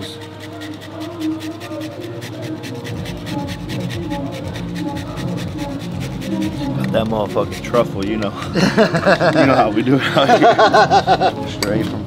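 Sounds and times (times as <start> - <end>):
truffle rasped on grater: 0.0 - 7.8
background music with ticking beat: 0.0 - 12.0.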